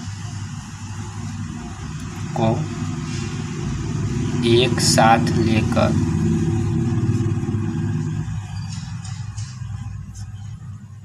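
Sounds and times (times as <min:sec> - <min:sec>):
engine droning: 0:00.0 - 0:11.0.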